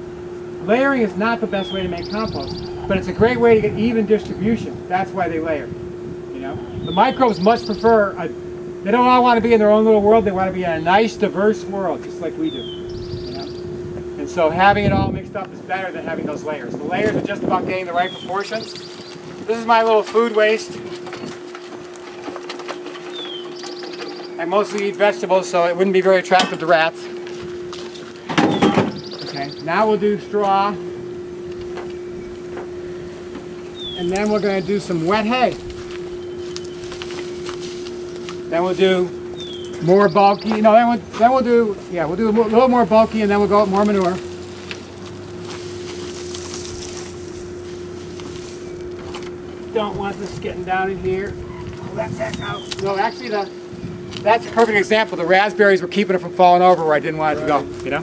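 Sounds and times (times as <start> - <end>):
steady low hum: 0.0 - 58.0
dry straw rustling and crackling: 17.0 - 30.6, 31.5 - 58.0
metal compost pail rattling: 19.5 - 26.9.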